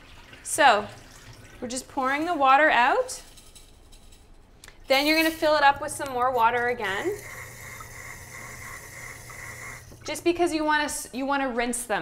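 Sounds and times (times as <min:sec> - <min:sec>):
tap water running into glass jar: 0:05.0 - 0:10.3.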